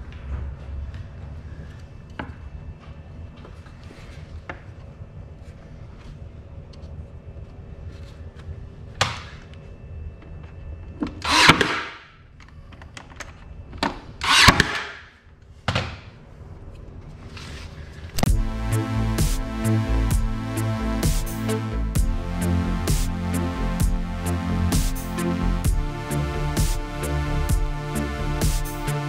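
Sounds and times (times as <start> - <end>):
electronic music with a beat: 18.2 - 29.0.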